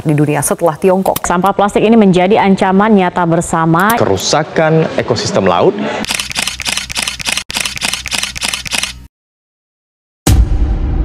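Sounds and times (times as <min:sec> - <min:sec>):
rapid camera shutter clicks: 0:06.0 - 0:09.1.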